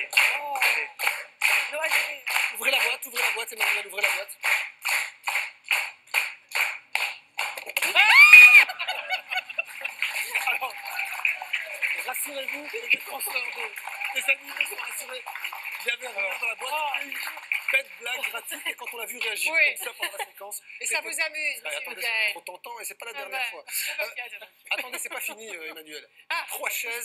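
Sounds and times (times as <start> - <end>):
audience applause: 0.0 - 19.6
audience clapping in unison: 0.0 - 19.8
audience laughing: 7.8 - 16.4, 19.8 - 20.4
woman screaming: 7.9 - 8.8
audience shouting: 7.9 - 12.1.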